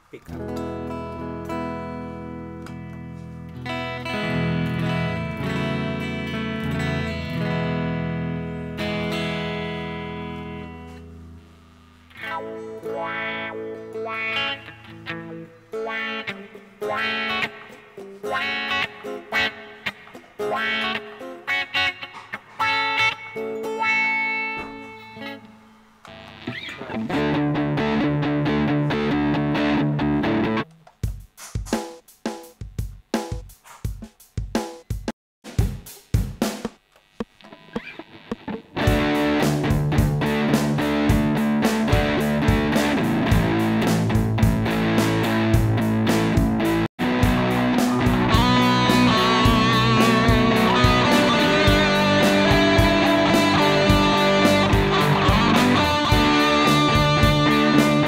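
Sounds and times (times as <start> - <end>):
electric guitar playing: 0.3 - 30.8, 37.2 - 58.0
drum machine beat: 30.6 - 37.4, 38.3 - 58.0.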